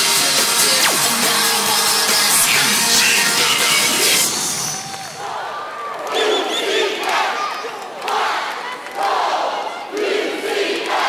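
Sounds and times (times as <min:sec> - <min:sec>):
dance music: 0:00.0 - 0:05.2
arena crowd noise: 0:00.0 - 0:11.0.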